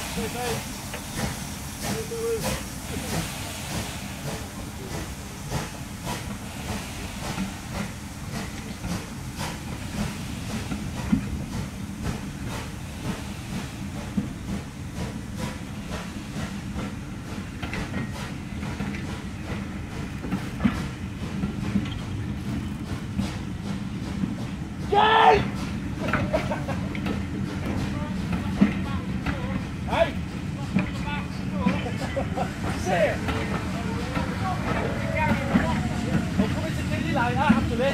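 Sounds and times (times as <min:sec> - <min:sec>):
train rolling past: 0:00.0 - 0:37.9
wheels clicking over rail joints: 0:14.0 - 0:37.9.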